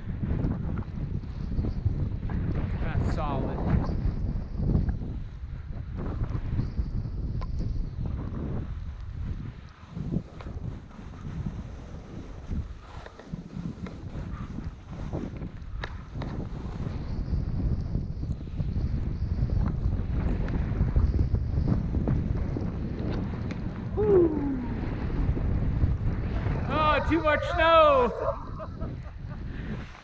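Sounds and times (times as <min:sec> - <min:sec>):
wind on microphone: 0:00.0 - 0:30.0
skis running through powder snow: 0:07.7 - 0:23.9, 0:24.6 - 0:30.0.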